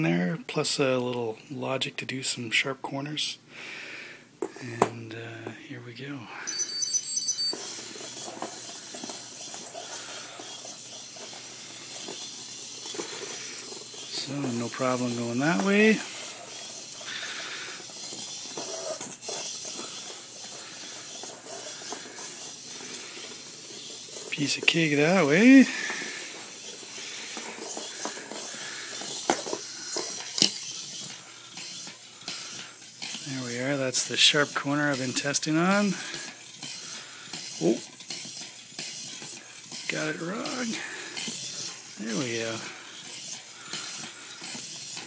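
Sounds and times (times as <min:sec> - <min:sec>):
small electric motors running: 0:06.5 - 0:45.0.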